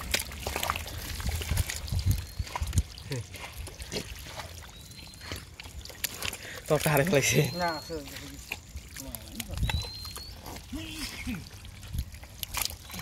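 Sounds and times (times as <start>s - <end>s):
hands squelching in wet mud: 0.0s - 13.0s
muddy water trickling: 0.0s - 13.0s.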